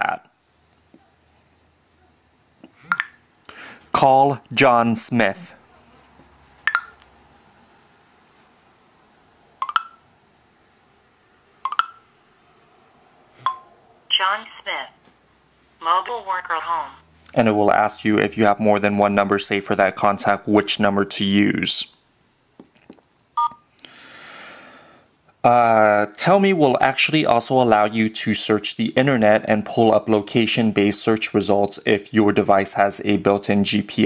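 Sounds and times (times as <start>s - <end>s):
cluster of electronic clicks: 6.7s - 7.1s, 9.6s - 10.0s, 11.6s - 12.0s
two-tone phone beep: 23.4s - 23.6s.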